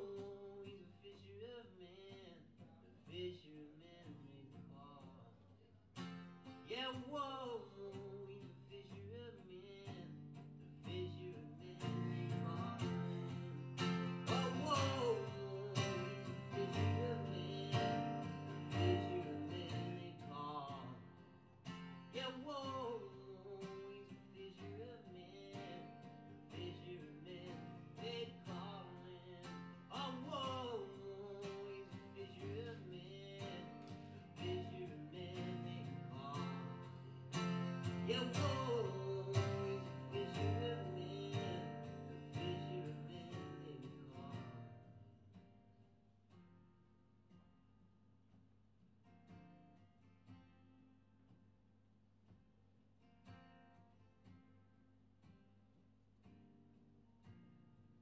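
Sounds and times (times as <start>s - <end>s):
acoustic guitars plucked and strummed: 0.0s - 47.9s, 49.0s - 51.6s, 53.0s - 58.0s.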